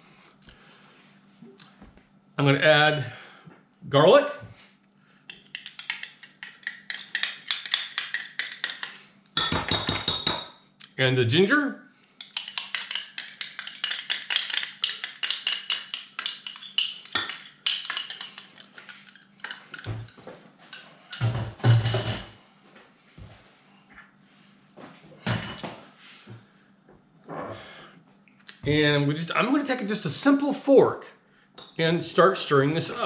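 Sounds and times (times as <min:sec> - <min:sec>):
metal spoon scraping glass: 0:12.2 - 0:19.9.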